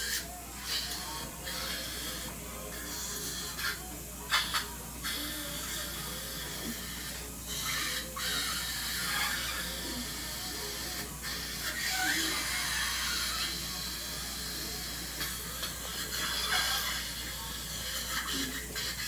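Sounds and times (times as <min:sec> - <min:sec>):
dental equipment hissing: 0:00.0 - 0:19.0
faint voices murmuring: 0:00.0 - 0:19.0.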